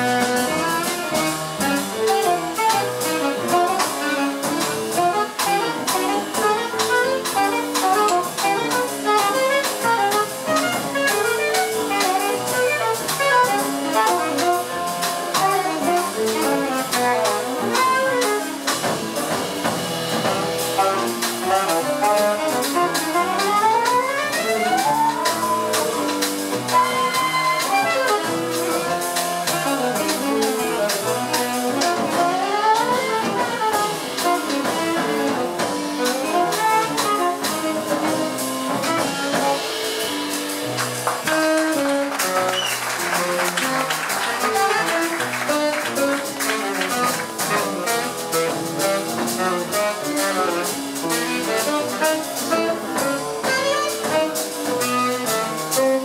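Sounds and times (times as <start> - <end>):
live jazz band: 0.0 - 56.0
fast upward run of notes: 20.6 - 29.6, 40.6 - 49.7.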